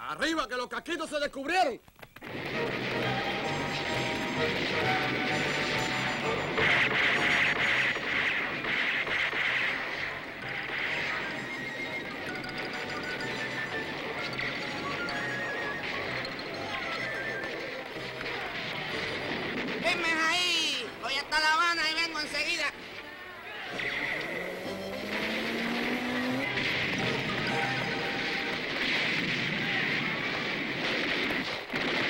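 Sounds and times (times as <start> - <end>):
busy action soundtrack music: 2.2 - 23.0, 23.7 - 28.7.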